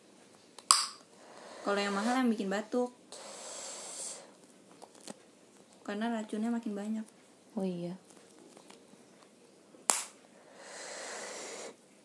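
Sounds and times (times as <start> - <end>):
plastic balloon popping: 0.6 - 1.0, 9.9 - 10.2
breathy hiss of air: 1.1 - 2.4, 3.1 - 4.4, 10.2 - 11.8.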